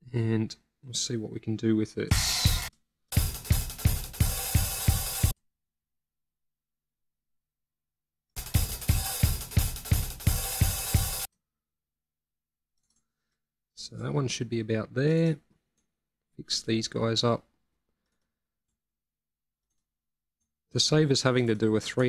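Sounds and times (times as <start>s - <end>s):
cymbals: 2.1s - 5.3s
kick drum hits: 8.4s - 11.3s.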